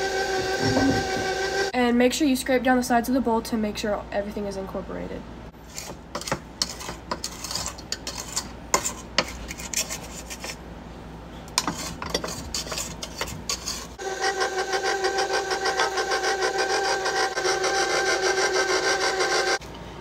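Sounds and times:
stand mixer motor whining: 0:00.0 - 0:01.7, 0:14.0 - 0:19.6
spatula scraping metal bowl: 0:05.6 - 0:10.6, 0:11.5 - 0:19.6.

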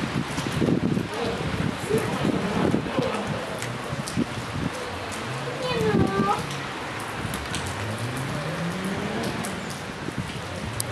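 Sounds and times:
rain pattering: 0:00.0 - 0:10.9.

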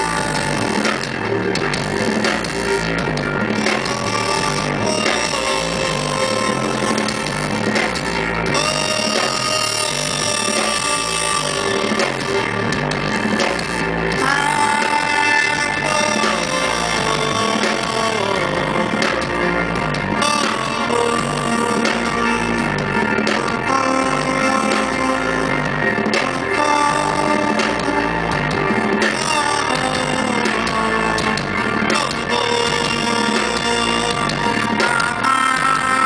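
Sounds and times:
live band playing: 0:00.0 - 0:36.0.

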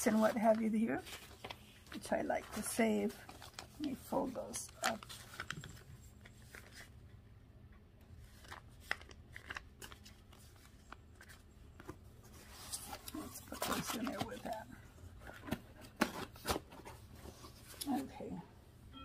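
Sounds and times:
paper and plastic bags rustling: 0:00.0 - 0:06.9, 0:08.2 - 0:18.3
receipts folded with clicks: 0:00.0 - 0:07.0, 0:08.1 - 0:18.3.

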